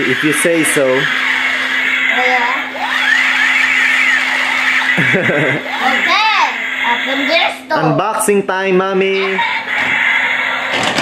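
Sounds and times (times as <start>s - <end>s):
toy gun electronic sweeps: 0.0s - 7.7s, 9.2s - 11.0s
steady whirring buzz: 0.0s - 11.0s.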